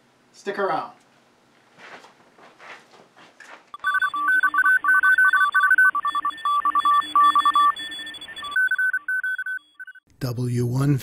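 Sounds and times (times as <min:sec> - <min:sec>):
electronic beeps switching pitch: 0:03.8 - 0:10.0
morse-like beeping tone: 0:03.8 - 0:10.0.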